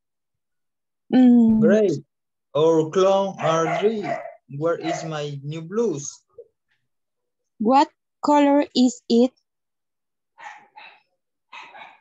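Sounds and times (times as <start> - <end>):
faint dog barking: 3.2 - 5.6, 10.4 - 12.0.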